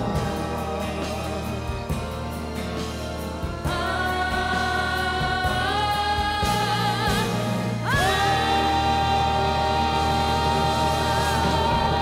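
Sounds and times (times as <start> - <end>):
boys singing held harmony: 0.0 - 12.0
steady bass: 0.0 - 12.0.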